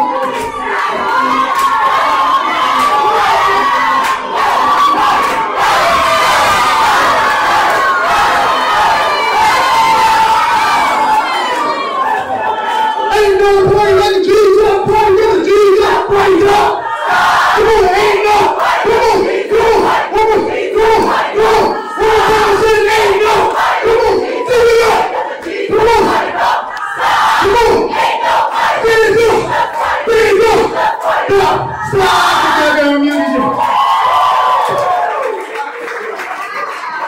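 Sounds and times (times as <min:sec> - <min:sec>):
crowd shouting and chanting: 0:00.0 - 0:35.8
man shouting into a microphone: 0:13.1 - 0:16.8, 0:17.5 - 0:25.1, 0:25.7 - 0:26.2, 0:27.4 - 0:28.0, 0:28.7 - 0:33.6.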